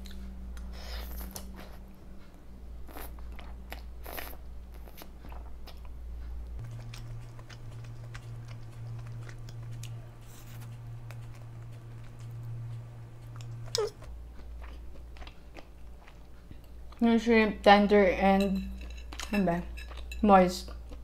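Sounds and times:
wet chewing and mouth clicks: 0:02.9 - 0:17.1.

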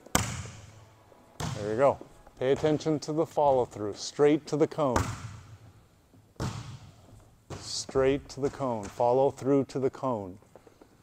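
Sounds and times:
ball landing on court: 0:00.1 - 0:00.7, 0:06.4 - 0:07.8
hand smacking volleyball: 0:06.4 - 0:07.8.

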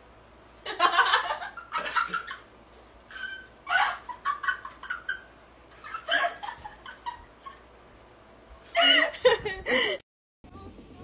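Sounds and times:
woman squealing laughter: 0:03.1 - 0:07.3.

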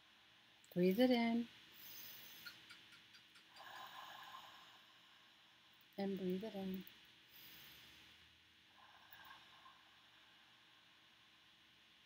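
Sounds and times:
soft breath drawn in: 0:01.7 - 0:02.6, 0:03.5 - 0:05.4, 0:07.3 - 0:11.0.

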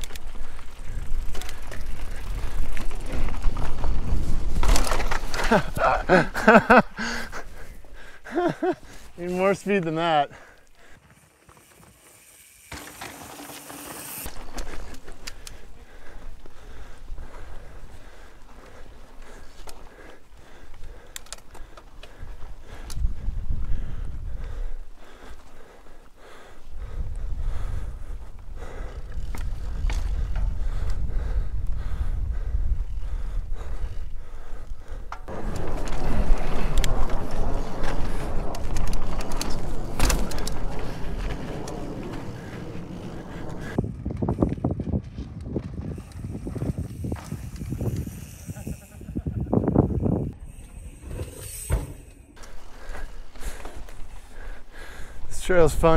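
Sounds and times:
bike clicks and rattles: 0:00.0 - 0:55.9
bike tyres rolling on rock: 0:00.0 - 0:55.9.

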